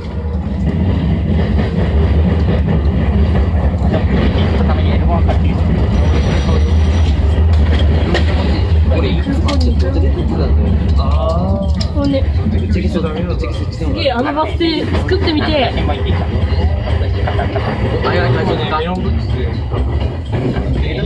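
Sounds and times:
electric train running rumble: 0:00.0 - 0:21.0.

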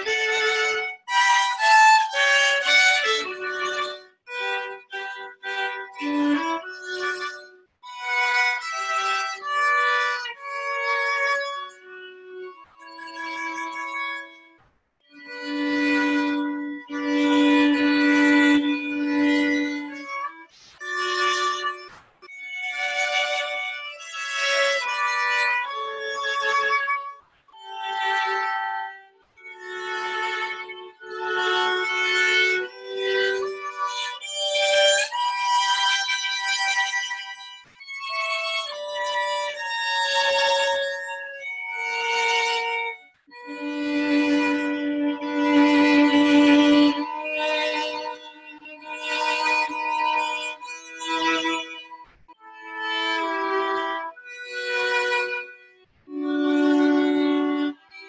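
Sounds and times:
two violins playing: 0:00.0 - 0:58.0.

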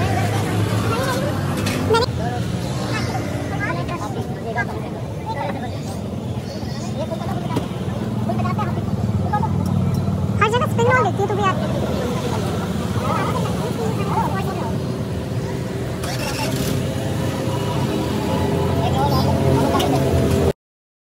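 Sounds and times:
people talking: 0:00.0 - 0:16.7, 0:18.4 - 0:20.5
road traffic rumble: 0:00.0 - 0:20.5.

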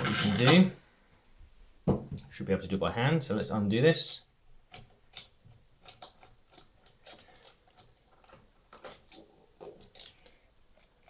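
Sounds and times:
metal clicks of screw being wound: 0:04.7 - 0:11.0.

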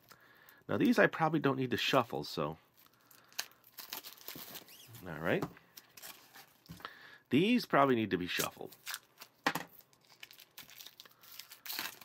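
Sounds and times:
plastic shrink-wrap crinkling: 0:02.7 - 0:06.7, 0:08.4 - 0:12.0.

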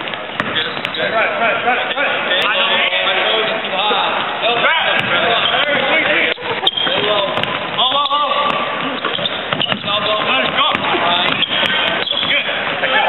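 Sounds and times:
basketball bouncing on hardwood: 0:00.1 - 0:01.0, 0:04.5 - 0:12.5.

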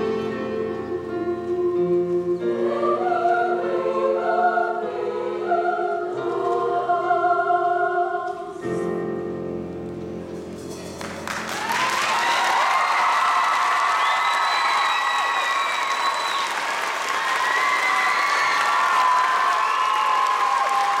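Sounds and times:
audience applauding and cheering: 0:10.9 - 0:21.0
shrill whoops and screams: 0:17.2 - 0:21.0.

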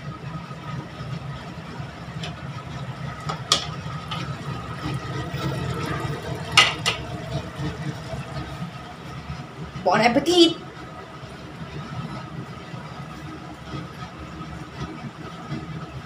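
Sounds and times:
steady low hum: 0:00.0 - 0:15.8.

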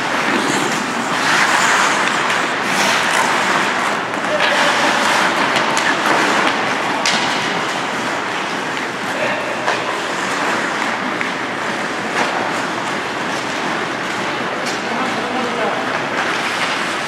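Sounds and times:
hockey sticks and puck clacking: 0:00.0 - 0:17.0
skate blades scraping ice: 0:00.0 - 0:17.0.

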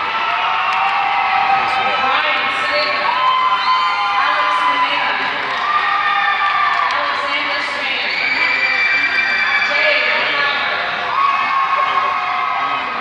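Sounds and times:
crowd cheering and shouting: 0:00.0 - 0:13.0
whoops and held calls: 0:02.6 - 0:12.6.

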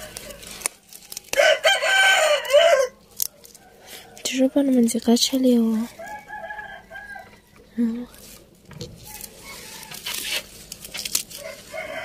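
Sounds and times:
rooster crowing: 0:01.3 - 0:04.2, 0:05.9 - 0:07.7, 0:09.0 - 0:10.4, 0:11.4 - 0:12.0.

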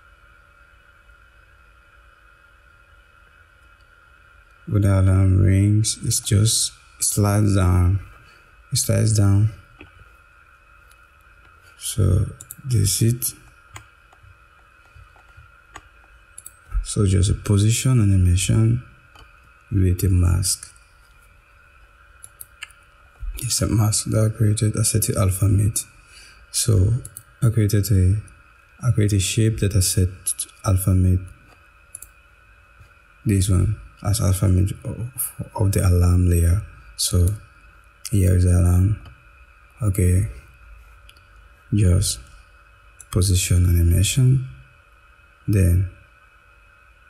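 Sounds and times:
faint room hum and hiss: 0:00.0 - 0:47.0.

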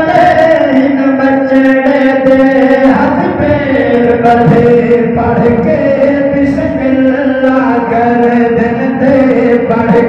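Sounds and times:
male voices chanting: 0:00.0 - 0:10.0.

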